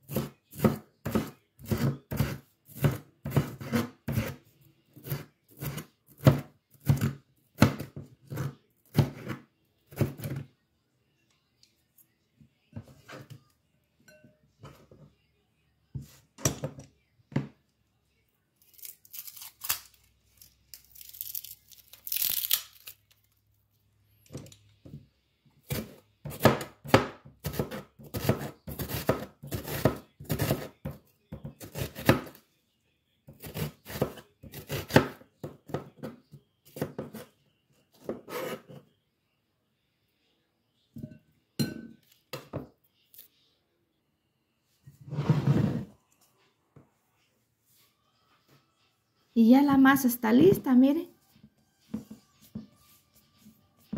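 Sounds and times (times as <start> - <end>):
knife cutting onion on board: 0.0 - 10.4, 25.6 - 32.4, 33.3 - 37.3, 38.0 - 38.8.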